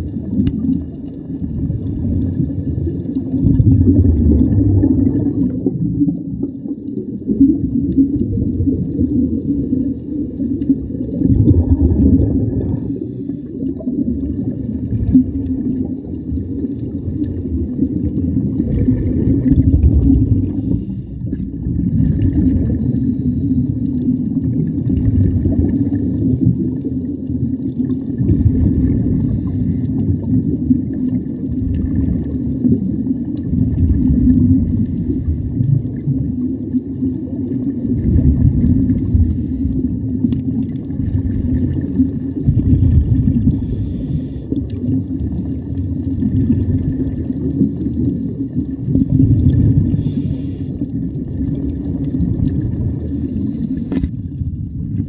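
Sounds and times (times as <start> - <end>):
exhaled bubbles gurgling: 0.0 - 55.0
diver breathing through regulator: 12.7 - 13.7, 20.4 - 21.4, 29.0 - 30.0, 34.7 - 35.6, 38.8 - 40.0, 43.4 - 44.7, 49.8 - 51.0, 53.1 - 54.1.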